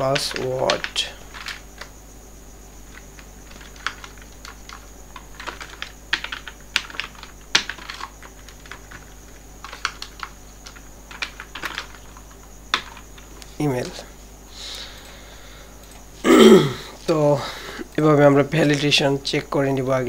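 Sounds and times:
computer keyboard typing: 0:00.0 - 0:01.9, 0:02.8 - 0:14.0.

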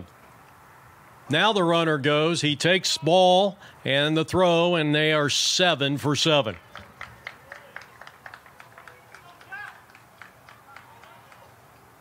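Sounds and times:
faint distant voices: 0:06.2 - 0:12.0.

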